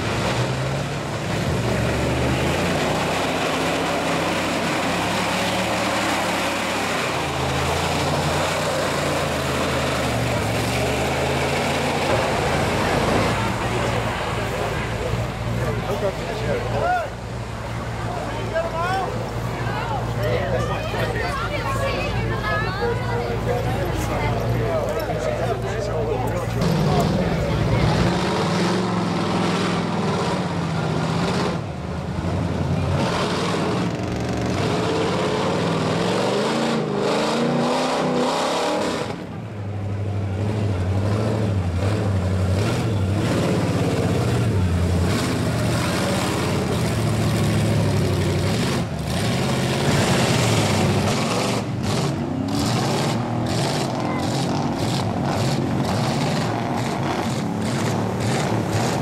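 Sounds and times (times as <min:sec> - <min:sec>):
churning mud and water: 0:00.0 - 0:18.3, 0:40.4 - 0:59.0
truck engines revving: 0:00.0 - 0:59.0.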